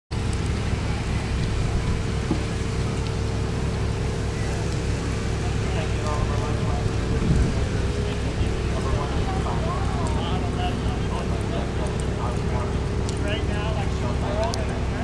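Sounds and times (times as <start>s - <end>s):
constant hum: 0.1s - 15.0s
low rumble: 0.1s - 15.0s
faint distant voices: 0.2s - 15.0s.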